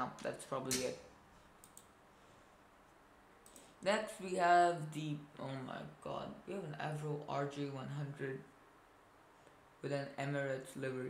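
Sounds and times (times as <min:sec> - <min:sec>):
computer mouse clicks: 0:01.6 - 0:02.0, 0:03.4 - 0:03.8.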